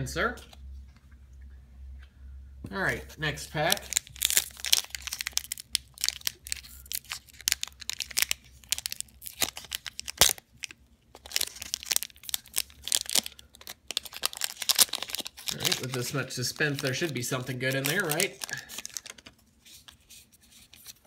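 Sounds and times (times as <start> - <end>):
foil wrapper crinkling: 3.6 - 21.0.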